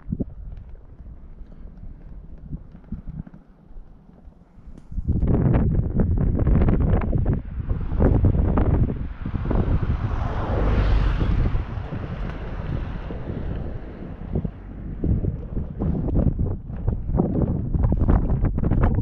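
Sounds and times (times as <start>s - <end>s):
wind buffeting microphone: 0.0s - 19.0s.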